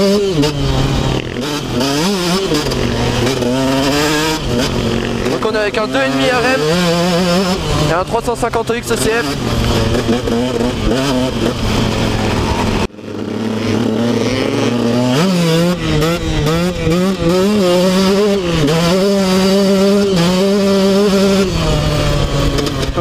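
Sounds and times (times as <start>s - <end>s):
motorcycle engine revving: 0.0s - 23.0s.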